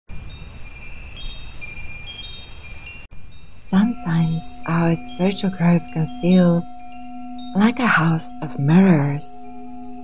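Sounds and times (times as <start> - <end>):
chimes ringing: 0.1 - 10.0.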